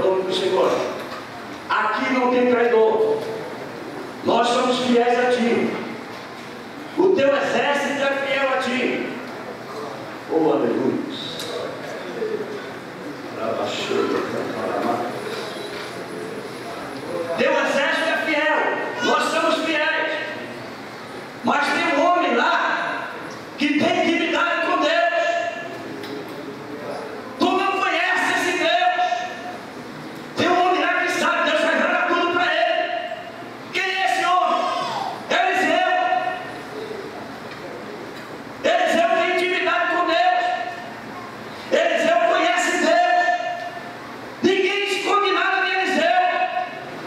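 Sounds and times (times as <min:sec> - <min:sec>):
man preaching into a microphone: 0:00.0 - 0:01.1, 0:01.7 - 0:03.4, 0:04.2 - 0:06.0, 0:07.0 - 0:09.2, 0:17.1 - 0:20.6, 0:21.4 - 0:25.8, 0:27.4 - 0:29.6, 0:30.4 - 0:36.6, 0:38.6 - 0:41.0, 0:41.6 - 0:47.0
man speaking through speakers: 0:00.0 - 0:03.6, 0:04.2 - 0:06.0, 0:06.9 - 0:20.6, 0:21.4 - 0:29.6, 0:30.4 - 0:41.0, 0:41.6 - 0:46.9
hall background noise: 0:00.0 - 0:47.0.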